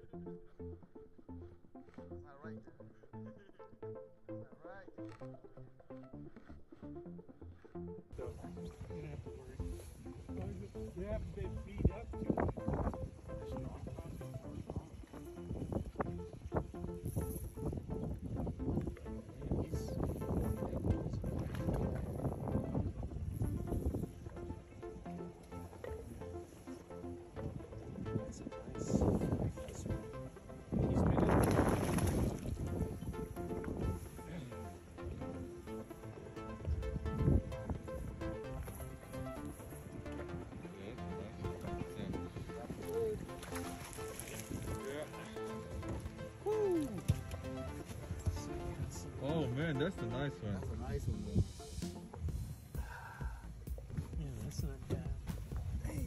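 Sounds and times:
background music with held notes: 0.0 - 56.0
fish splashing water: 31.3 - 32.4, 43.2 - 44.9.

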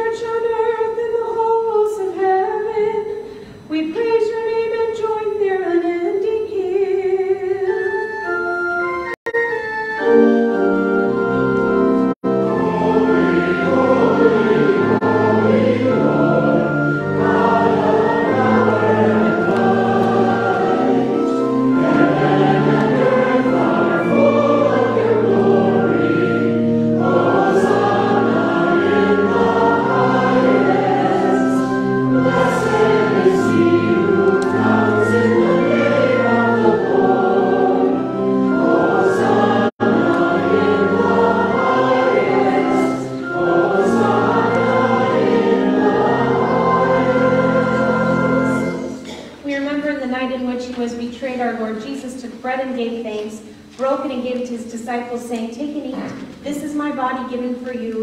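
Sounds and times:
choir singing long held notes: 10.0 - 49.2.

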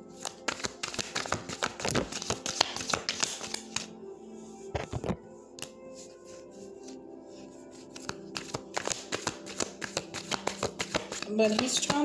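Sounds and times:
soft background music: 0.0 - 12.0
cards being shuffled: 0.2 - 3.9, 7.7 - 12.0.

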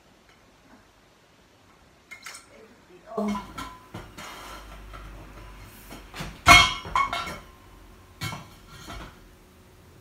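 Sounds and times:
metal tubes clinking and knocking: 3.2 - 7.6.

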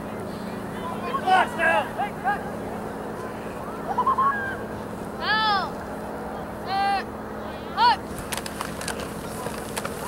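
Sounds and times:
young person shouting calls: 5.2 - 5.7, 6.7 - 7.1
football pads clacking: 8.2 - 10.0.

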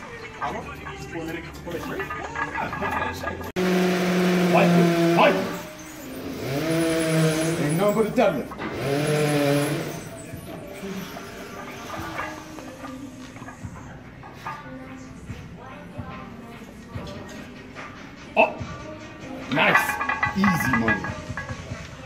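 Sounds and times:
faint music: 0.0 - 22.0.

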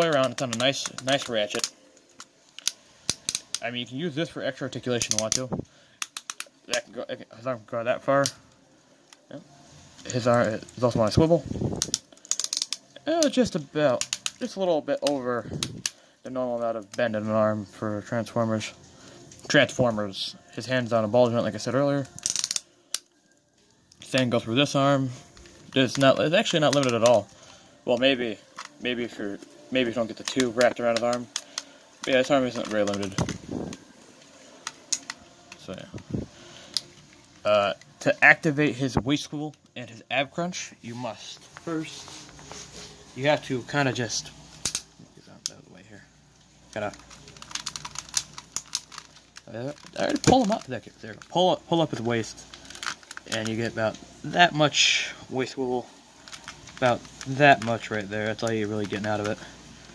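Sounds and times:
plastic toy figure clicking and rattling: 0.0 - 3.6, 5.0 - 6.5, 11.7 - 13.4, 14.0 - 14.4, 22.1 - 23.1, 46.8 - 51.3
plastic ratchet joint clicking: 6.0 - 6.5, 11.8 - 12.8, 22.2 - 23.0.

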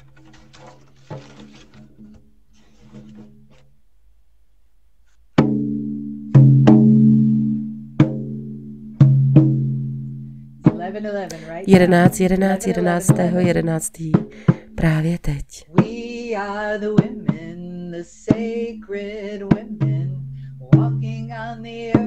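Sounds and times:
faint handling sounds: 0.0 - 3.8.

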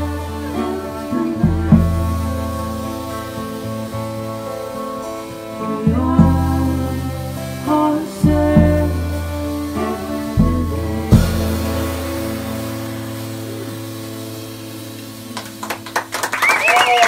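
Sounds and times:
folk-rock band ending a song: 0.0 - 17.0.

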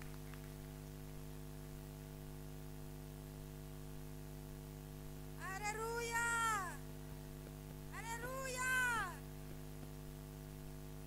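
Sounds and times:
young child crying: 8.0 - 9.2.

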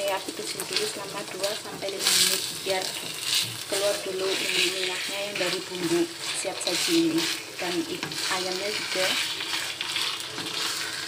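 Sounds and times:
chicken sizzling in a wok: 0.0 - 11.0
wooden spatula scraping wok: 0.0 - 11.0.

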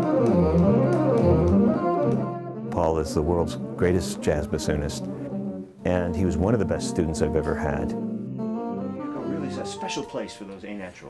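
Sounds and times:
bassoon playing low melody: 0.0 - 10.2.

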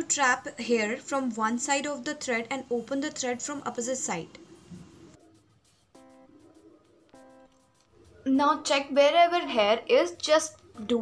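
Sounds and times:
plucked guitar chords: 6.0 - 6.5, 7.1 - 7.6.

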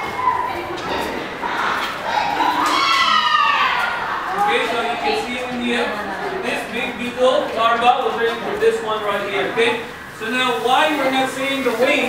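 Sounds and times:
children's voices: 0.0 - 6.9.

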